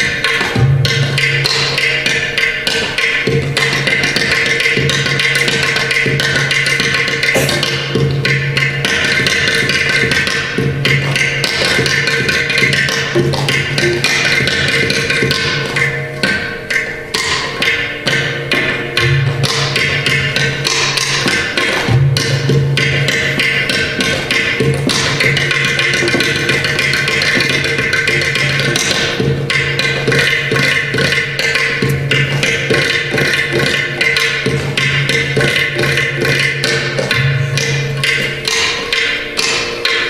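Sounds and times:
ghatam strokes: 0:00.0 - 0:40.0
mridangam strokes: 0:00.0 - 0:40.0.

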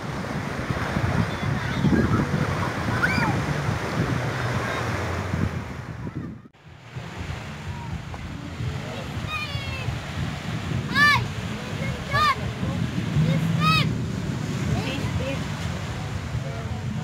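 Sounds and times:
surf washing on beach: 0:00.0 - 0:17.0
wind buffeting microphone: 0:00.0 - 0:17.0.

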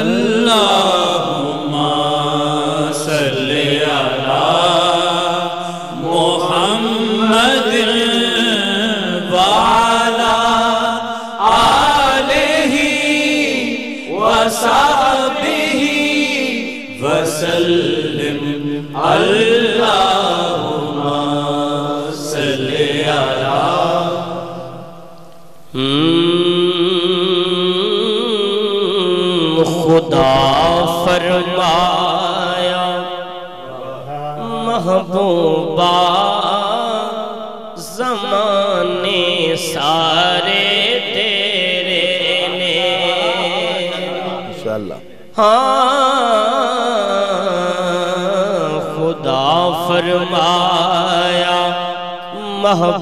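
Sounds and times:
man singing into a microphone: 0:00.0 - 0:24.8, 0:25.7 - 0:53.0
singer breathing: 0:05.5 - 0:06.0, 0:11.0 - 0:11.4.

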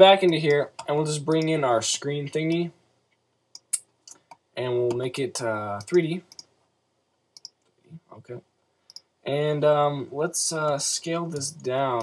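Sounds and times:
computer mouse clicking: 0:03.5 - 0:05.0, 0:05.8 - 0:06.5, 0:07.4 - 0:07.7.

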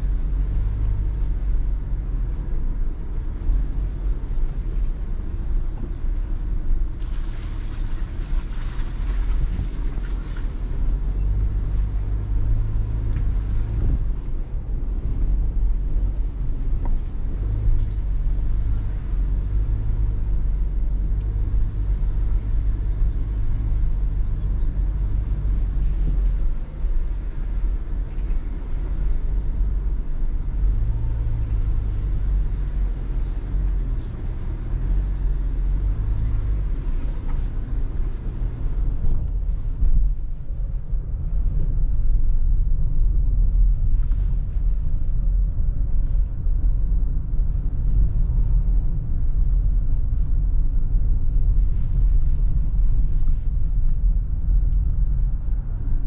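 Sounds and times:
tyres rumbling on rough dirt track: 0:00.0 - 0:56.0.

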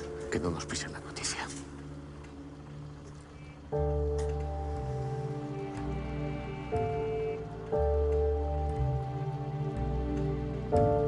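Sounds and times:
sustained soundtrack chords: 0:00.0 - 0:11.0.

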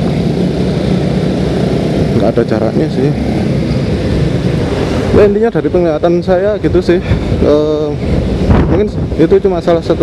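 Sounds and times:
motorcycle engine running: 0:00.0 - 0:10.0
road and wind noise: 0:00.0 - 0:10.0.

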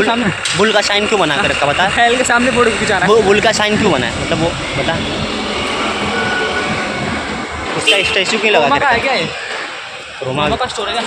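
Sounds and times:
road traffic rush: 0:00.0 - 0:11.0.

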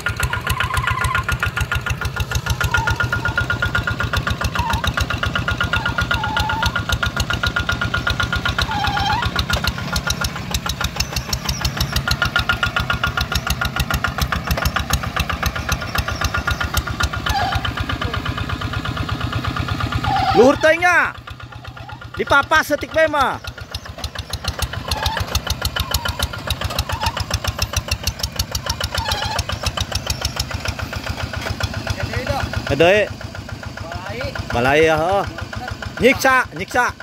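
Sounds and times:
diesel engine chugging: 0:00.0 - 0:37.0.

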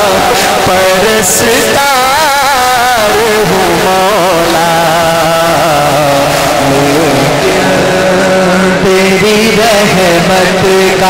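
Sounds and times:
man singing into a microphone: 0:00.0 - 0:11.0
steady low drone: 0:00.0 - 0:11.0.

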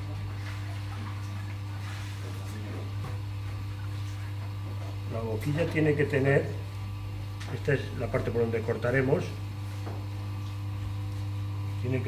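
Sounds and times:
potter's wheel humming: 0:00.0 - 0:12.0.

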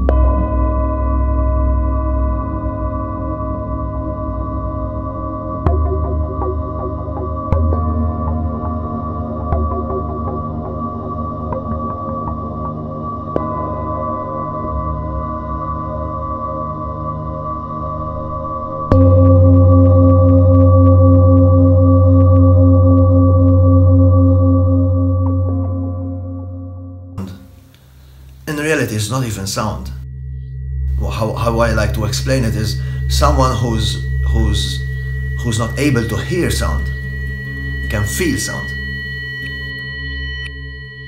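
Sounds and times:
singing bowl ringing: 0:00.0 - 0:27.6, 0:28.6 - 0:41.0
ambient drone music: 0:00.0 - 0:41.0.

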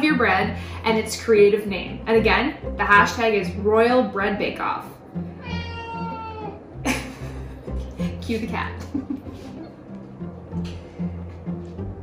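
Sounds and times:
cat meowing: 0:05.4 - 0:06.6.

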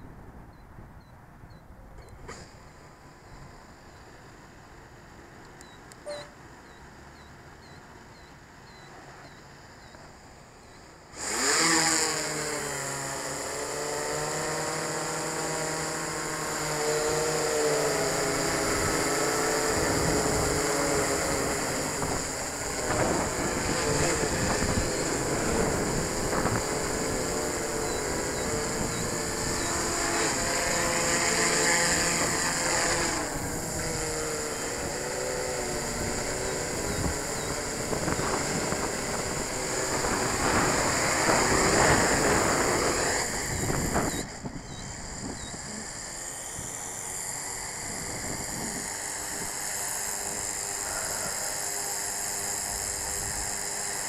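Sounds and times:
quadcopter propeller hum: 0:00.0 - 0:54.0.

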